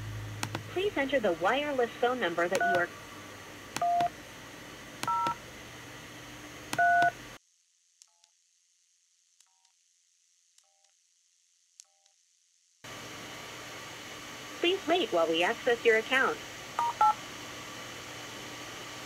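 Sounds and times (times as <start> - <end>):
touch-tone keypad beeps: 2.6 - 2.9, 3.8 - 4.1, 5.0 - 5.4, 6.8 - 7.1.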